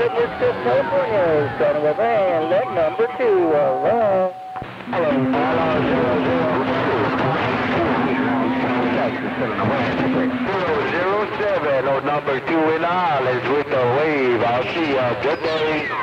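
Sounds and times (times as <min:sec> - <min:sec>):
radio voice: 0:00.0 - 0:12.6
garbled radio voices: 0:00.0 - 0:16.0
low steady tone: 0:01.8 - 0:12.5.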